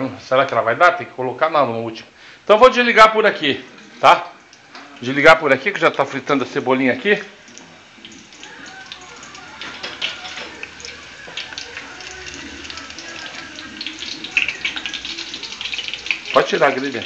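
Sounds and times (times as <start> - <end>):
green onions sizzling in oil: 3.4 - 17.0.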